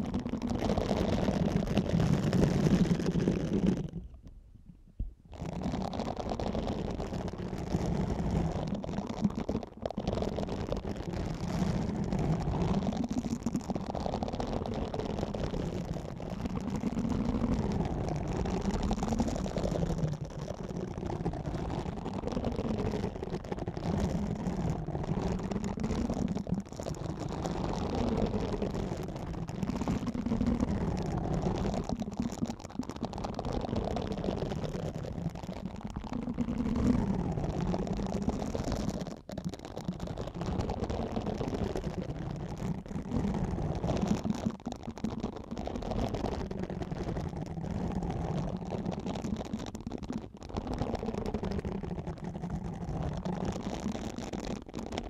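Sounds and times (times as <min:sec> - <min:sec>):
silicone scrubber rubbing microphone: 0:00.0 - 0:32.4.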